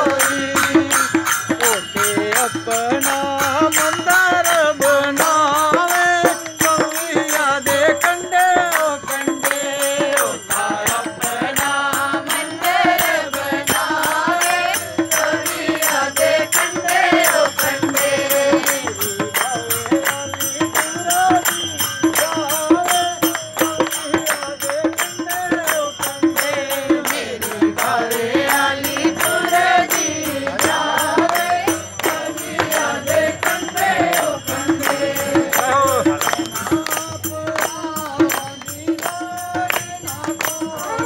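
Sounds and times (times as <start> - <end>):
group singing a devotional chant: 0.0 - 41.0
rhythmic hand clapping: 0.0 - 41.0.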